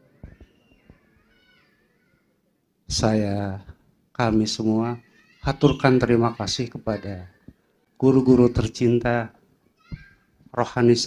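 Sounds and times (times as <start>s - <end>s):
man speaking: 2.9s - 7.4s, 8.0s - 9.4s, 10.5s - 11.0s.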